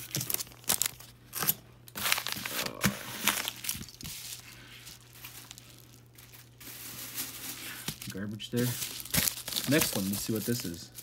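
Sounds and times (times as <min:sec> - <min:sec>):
paper and plastic packaging rustling: 0:00.0 - 0:11.0.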